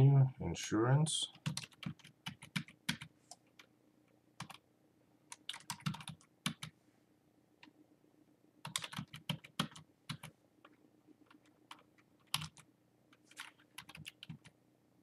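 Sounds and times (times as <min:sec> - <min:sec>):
computer keyboard typing: 0:01.3 - 0:03.7, 0:04.4 - 0:04.6, 0:05.3 - 0:06.8, 0:08.6 - 0:10.3, 0:11.2 - 0:14.6.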